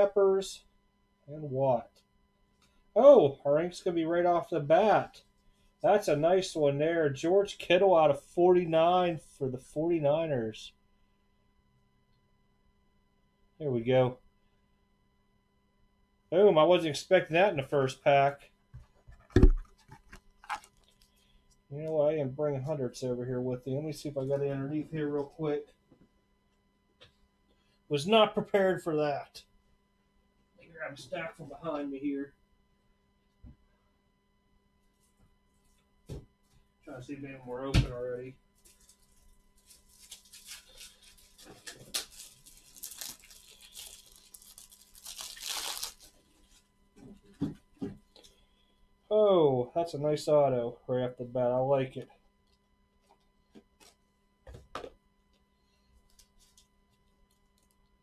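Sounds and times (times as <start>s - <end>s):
objects knocking against desk: 19.1s - 19.7s
plastic packaging crinkling: 19.3s - 21.2s, 38.6s - 46.6s.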